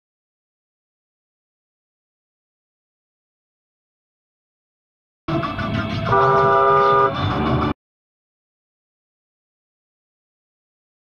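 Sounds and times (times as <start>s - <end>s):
cabin road noise: 5.3s - 7.8s
car horn blast: 6.1s - 7.5s.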